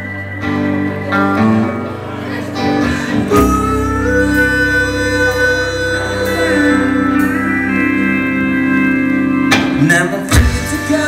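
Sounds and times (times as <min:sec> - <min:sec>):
rock band playing instrumental: 0:00.0 - 0:11.0.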